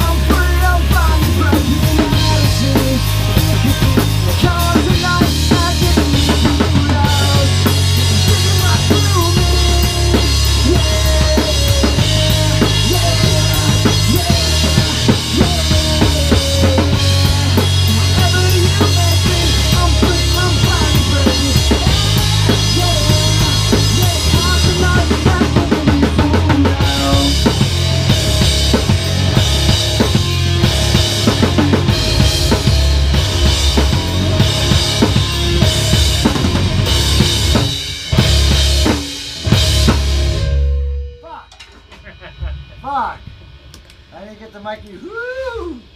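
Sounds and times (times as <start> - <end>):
electric guitar: 0.0 - 44.1
electric bass: 0.0 - 44.4
drum kit: 0.0 - 45.9.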